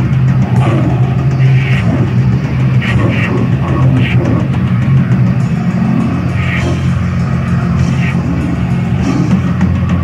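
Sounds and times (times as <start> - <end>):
distorted guitar: 0.0 - 10.0
low drone: 0.0 - 10.0.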